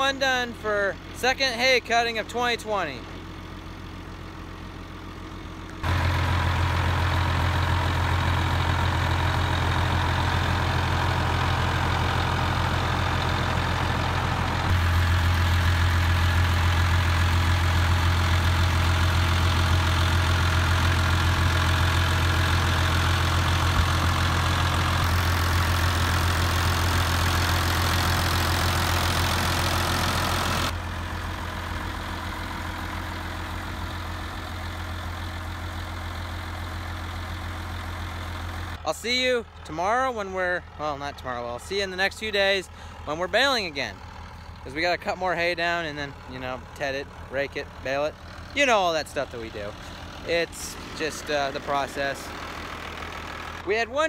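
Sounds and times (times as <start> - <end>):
tractor engine idling: 0.0 - 54.0.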